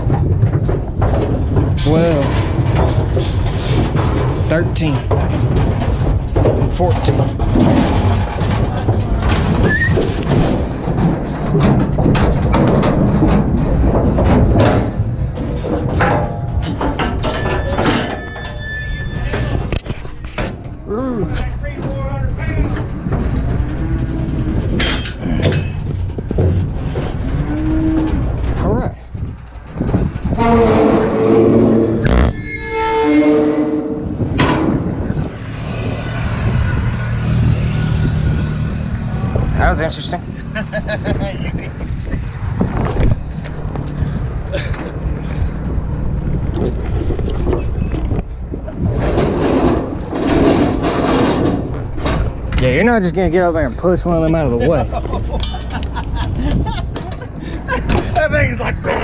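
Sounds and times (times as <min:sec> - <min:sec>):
hooves clattering on metal trailer: 0:00.0 - 0:59.0
cattle calling: 0:23.2 - 0:25.7, 0:27.2 - 0:28.4.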